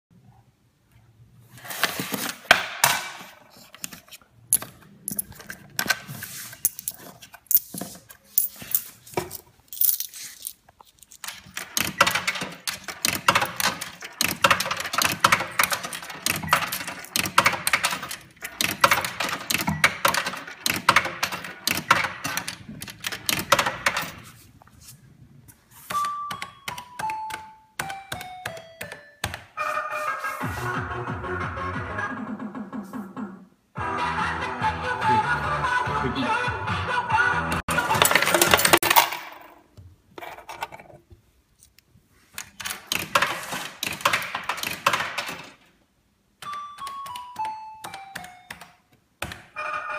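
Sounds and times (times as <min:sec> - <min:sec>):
metal coins clinking: 0:04.5 - 0:11.6, 0:13.4 - 0:21.6, 0:37.8 - 0:39.6.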